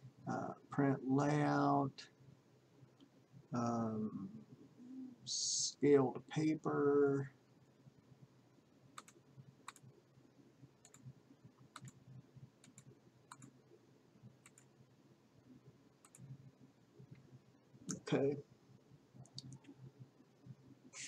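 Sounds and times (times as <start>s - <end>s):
low room tone: 0.0s - 21.0s
computer mouse clicks: 9.0s - 9.9s, 10.8s - 11.1s, 11.7s - 12.0s, 12.6s - 13.6s, 14.4s - 14.7s, 16.0s - 16.3s.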